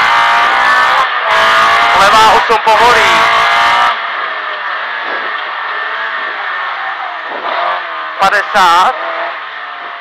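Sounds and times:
car engine from inside cabin: 0.0 - 10.0
road noise: 0.0 - 10.0.

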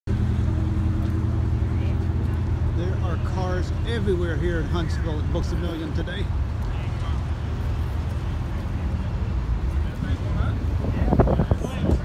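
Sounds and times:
car engine idling: 0.1 - 12.0
people's voices: 0.5 - 12.0.

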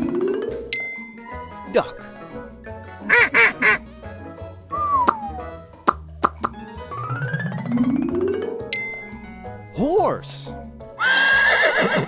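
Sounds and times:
children's background music: 0.0 - 11.3
cartoon duck quacking: 3.0 - 3.8
falling whistle-like glide: 4.7 - 5.6.

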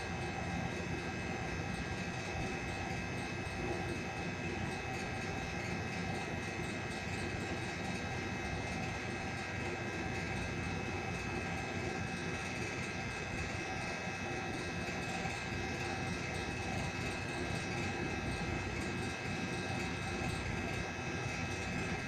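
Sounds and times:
mechanical hum with steady tones: 0.0 - 22.0.

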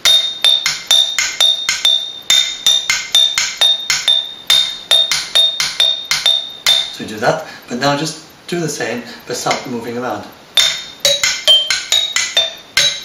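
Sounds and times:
glass jars struck with sticks: 0.0 - 7.0, 10.6 - 13.0.

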